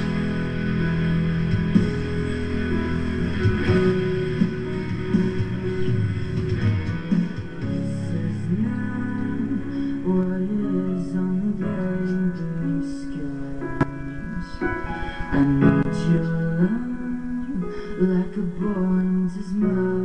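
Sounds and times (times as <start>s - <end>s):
electric guitar music: 0.0s - 16.4s.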